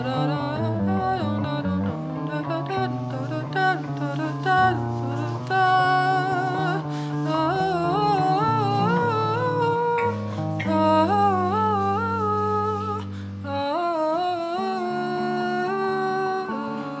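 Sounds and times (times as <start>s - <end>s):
low guitar notes: 0.0s - 17.0s
woman singing wordlessly: 0.0s - 17.0s.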